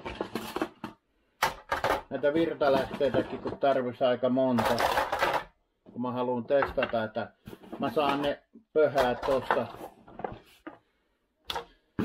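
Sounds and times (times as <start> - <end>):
packaging rustling and clattering: 0.0 - 5.6, 6.5 - 10.9.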